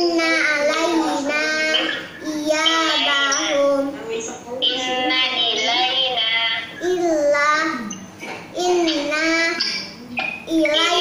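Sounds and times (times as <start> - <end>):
girl chanting verses: 8.6 - 11.0.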